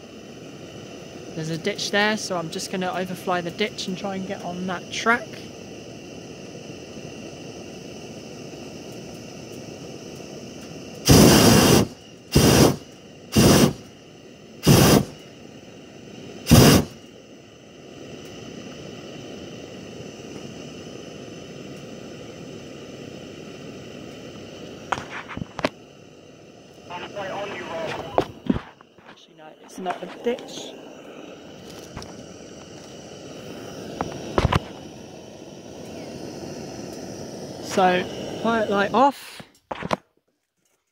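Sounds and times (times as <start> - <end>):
steady low hiss: 0.0 - 39.4
propane burner blasts: 0.0 - 40.0.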